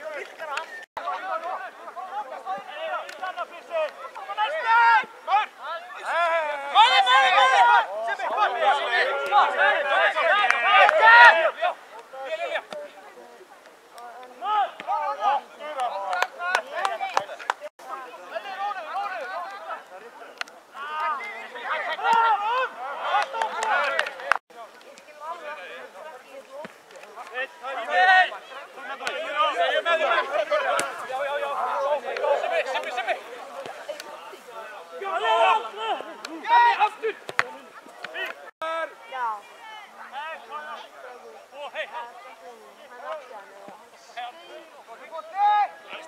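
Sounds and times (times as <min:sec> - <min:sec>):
voices shouting: 0:00.0 - 0:24.4, 0:25.1 - 0:46.0.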